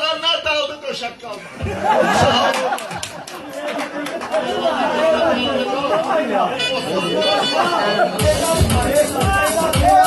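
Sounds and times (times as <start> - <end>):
people chattering: 1.4 - 10.0.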